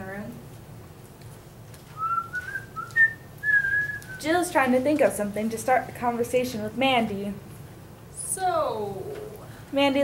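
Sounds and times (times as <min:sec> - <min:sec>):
room hum: 0:00.0 - 0:10.0
person whistling: 0:02.0 - 0:04.2.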